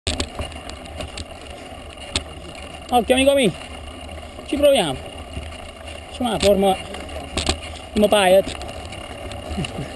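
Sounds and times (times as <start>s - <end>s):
bike knocks and rattles: 0.1s - 9.9s
steady low rumble: 0.1s - 9.9s.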